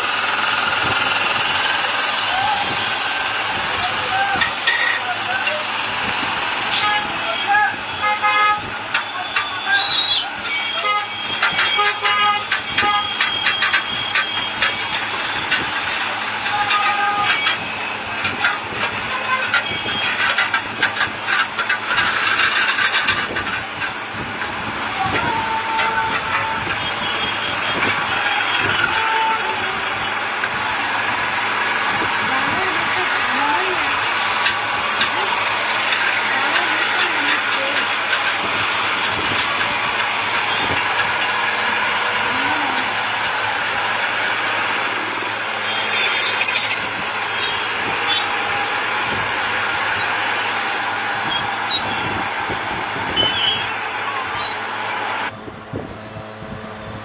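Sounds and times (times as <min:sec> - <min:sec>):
truck engines running: 0:00.0 - 0:57.0
people talking: 0:00.6 - 0:50.0.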